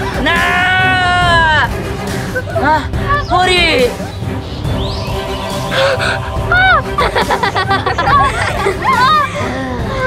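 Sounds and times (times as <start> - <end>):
background music: 0.0 - 10.0
girl screaming: 8.8 - 9.5.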